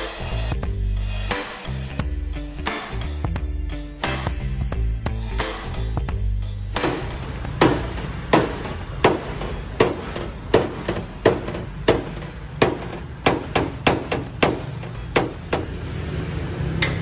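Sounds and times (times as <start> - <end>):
hammer knocking on sheet metal: 6.8 - 15.7.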